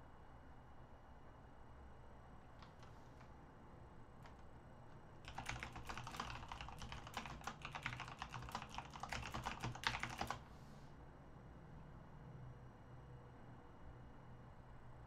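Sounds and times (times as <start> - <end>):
keyboard typing clicks: 2.6 - 2.9, 5.3 - 10.4.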